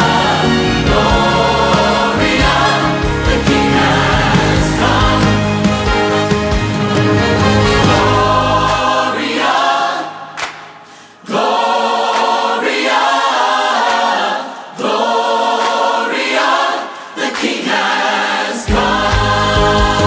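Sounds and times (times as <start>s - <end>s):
choir singing: 0.0s - 20.0s.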